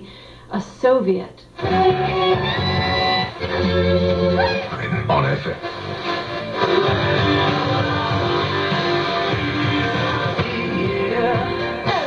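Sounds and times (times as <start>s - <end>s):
guitar music from radio: 1.6s - 12.0s.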